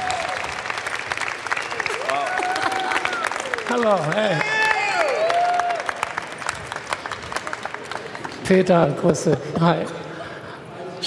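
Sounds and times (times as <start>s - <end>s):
audience applauding: 0.0s - 9.1s.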